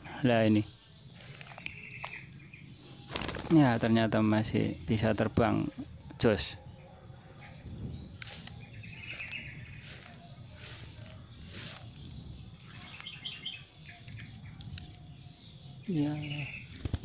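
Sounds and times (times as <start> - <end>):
songbirds chirping in trills: 0.0 - 17.0
rustling of brush and leaves: 0.4 - 4.2, 7.5 - 17.0.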